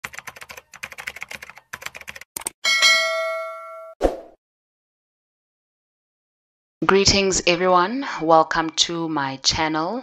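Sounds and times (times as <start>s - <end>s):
keyboard typing clicks: 0.0s - 2.6s
bell ding: 2.6s - 4.0s.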